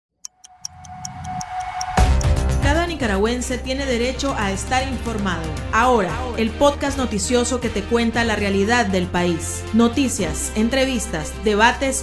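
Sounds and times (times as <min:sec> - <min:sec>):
clock ticking: 0:00.2 - 0:02.4
steady tone: 0:00.3 - 0:03.8.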